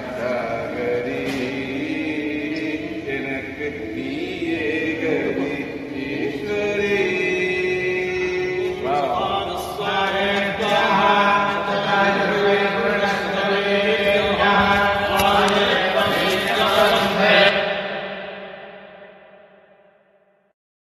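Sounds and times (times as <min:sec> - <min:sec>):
devotional chanting: 0:00.0 - 0:19.8
steady drone: 0:00.0 - 0:19.8.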